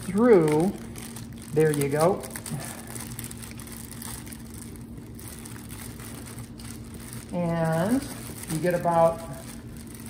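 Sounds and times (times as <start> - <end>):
low room hum: 0.0 - 10.0
thin plastic rustling: 0.0 - 10.0.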